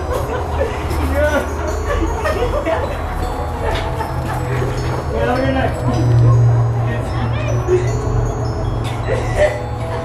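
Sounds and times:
background music with bass: 0:00.0 - 0:10.0
people's voices: 0:00.0 - 0:10.0.

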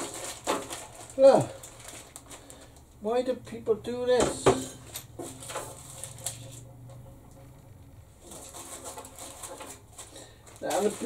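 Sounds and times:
plastic wrapping rustling: 0:00.0 - 0:03.1, 0:04.3 - 0:11.0.

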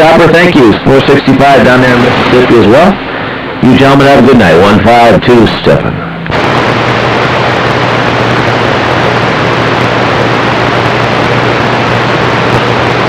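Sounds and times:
low steady hum: 0:00.0 - 0:13.0
radio static hiss: 0:00.0 - 0:13.0.

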